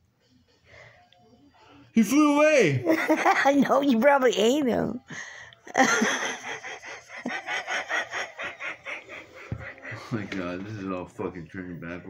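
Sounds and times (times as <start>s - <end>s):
person snickering: 5.7s - 10.4s.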